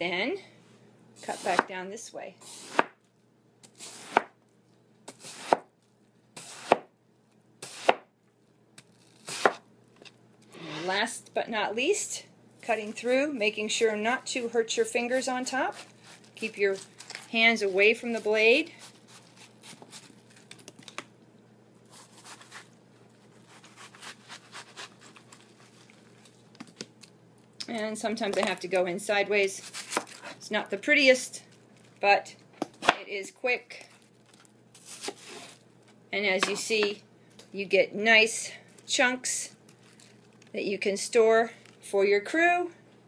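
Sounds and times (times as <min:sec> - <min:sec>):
knife chopping watermelon on board: 0:06.4 - 0:06.9, 0:07.6 - 0:08.0
knife crunching through melon: 0:18.8 - 0:20.9, 0:21.8 - 0:26.9, 0:29.6 - 0:30.3, 0:33.8 - 0:35.6.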